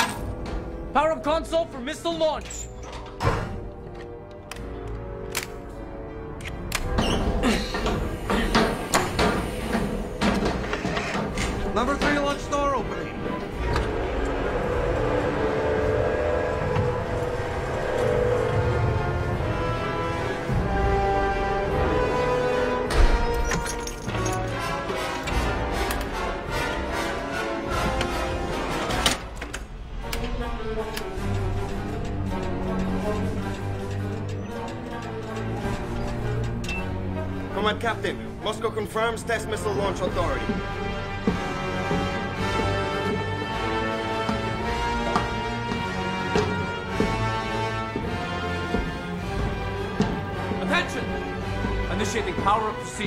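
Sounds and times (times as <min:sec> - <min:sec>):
dramatic orchestral music: 0:00.0 - 0:53.0
film score with held notes: 0:00.0 - 0:53.0.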